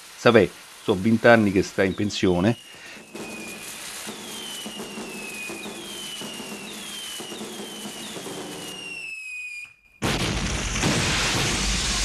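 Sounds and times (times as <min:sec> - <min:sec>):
fireworks crackling: 0:00.0 - 0:12.0
fireworks whistling: 0:00.0 - 0:12.0.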